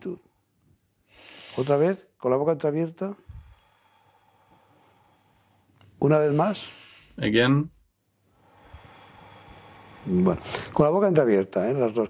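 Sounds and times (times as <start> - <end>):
man breathing in: 0.2 - 1.9, 3.2 - 7.2, 8.3 - 10.8.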